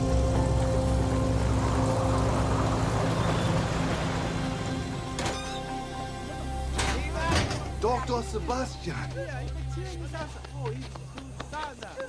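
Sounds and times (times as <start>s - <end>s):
propeller plane engines: 0.0s - 7.0s
dramatic music score: 0.0s - 11.8s.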